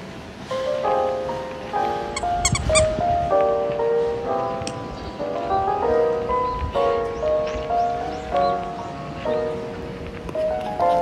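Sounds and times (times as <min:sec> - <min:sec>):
background music with sustained chords: 0:02.9 - 0:11.0.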